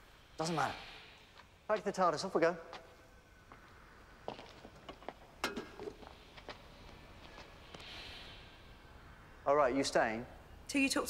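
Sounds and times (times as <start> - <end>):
faint footsteps: 2.6 - 8.0.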